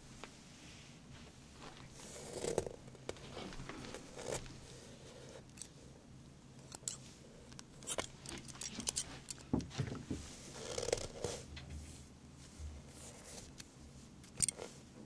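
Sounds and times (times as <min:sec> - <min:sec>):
rustle of hands and clothing: 0:00.0 - 0:05.2, 0:08.0 - 0:15.0.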